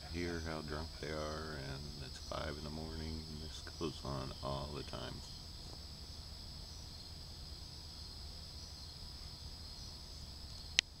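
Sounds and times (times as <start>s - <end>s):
crickets chirring: 0.0s - 11.0s.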